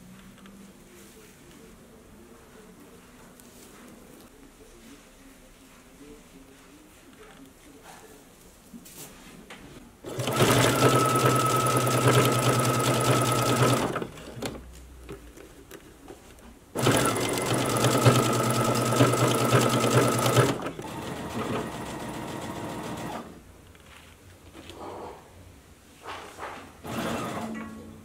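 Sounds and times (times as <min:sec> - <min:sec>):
sewing machine motor whine: 0:10.1 - 0:14.1, 0:16.8 - 0:23.3.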